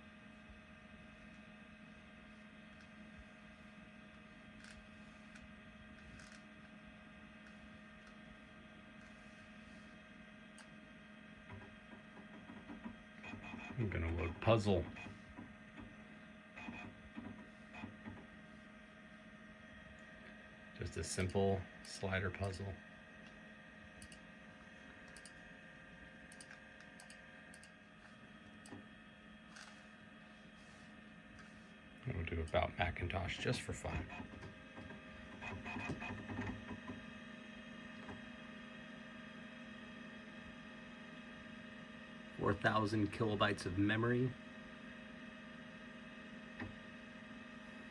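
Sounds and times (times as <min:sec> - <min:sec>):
computer electrical hum: 0:00.0 - 0:47.9
soft clicks: 0:24.0 - 0:24.2, 0:25.0 - 0:25.4, 0:26.3 - 0:27.8.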